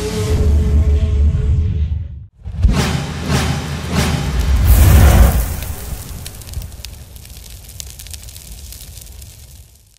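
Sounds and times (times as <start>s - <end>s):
scattered crackling: 4.2s - 9.9s.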